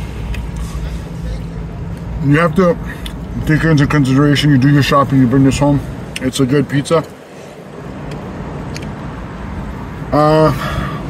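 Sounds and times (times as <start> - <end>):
road traffic hiss: 0.0 - 11.0.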